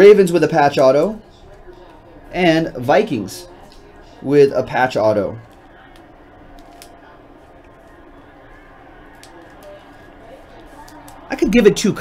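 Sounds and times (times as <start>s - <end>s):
trading cards clicking: 5.4s - 7.0s, 9.1s - 9.9s, 10.6s - 11.3s.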